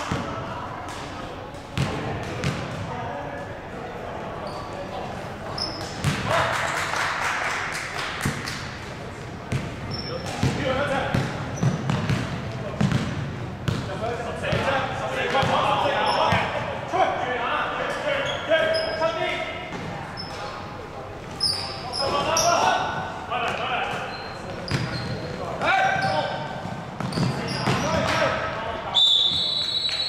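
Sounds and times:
sneaker squeaks: 4.4s - 4.8s, 5.5s - 6.2s, 9.5s - 13.0s, 15.4s - 16.6s, 17.8s - 20.6s, 21.3s - 22.7s, 23.5s - 28.3s, 28.9s - 30.0s
basketball bouncing on wooden court: 10.3s - 13.9s, 24.7s - 25.0s, 26.6s - 28.1s.

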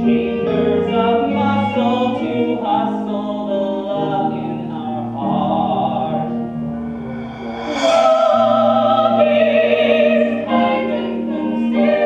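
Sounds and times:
musical theatre singing: 0.0s - 12.0s
steady low accompanying tone: 4.2s - 10.5s.

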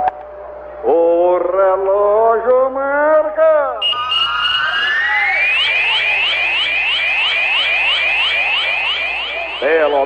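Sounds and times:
electronic whistle tone gliding upward: 3.8s - 10.0s
rapid rising electronic chirps: 3.8s - 10.0s.

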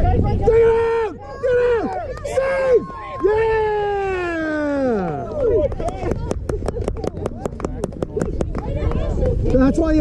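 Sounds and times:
people shouting: 0.0s - 5.6s
fast sharp clapping: 5.0s - 10.0s.

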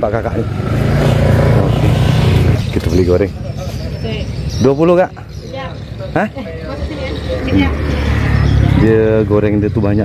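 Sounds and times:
vehicle passing by: 0.0s - 4.9s, 5.6s - 10.0s.

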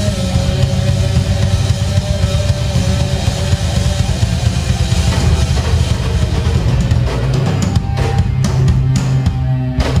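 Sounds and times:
drum kit: 0.0s - 10.0s
electric guitars: 0.0s - 10.0s.

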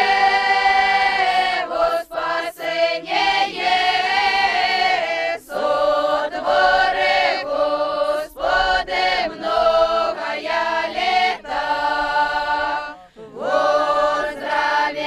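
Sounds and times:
group singing unaccompanied: 0.0s - 15.0s
singers breathing: 13.0s - 13.4s.

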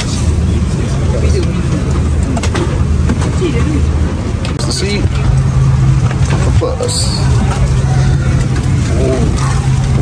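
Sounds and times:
cabin air system hum: 0.0s - 10.0s.

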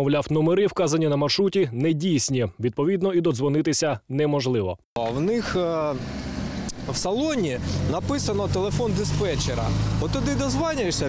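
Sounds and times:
man talking: 0.0s - 6.0s, 6.8s - 11.0s
road traffic noise: 5.0s - 11.0s.

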